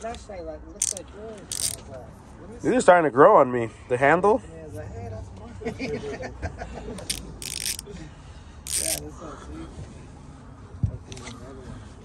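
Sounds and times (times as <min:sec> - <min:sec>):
ratchet clicking: 0:00.8 - 0:01.8, 0:07.0 - 0:07.8, 0:08.7 - 0:09.0.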